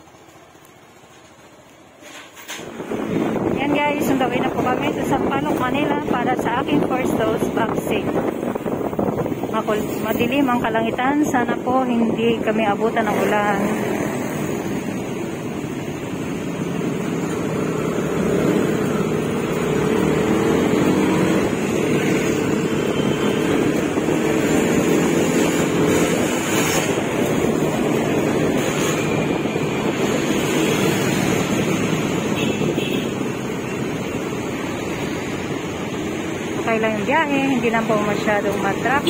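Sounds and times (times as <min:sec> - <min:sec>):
road noise: 0:00.0 - 0:39.0
wind on microphone: 0:02.6 - 0:14.1.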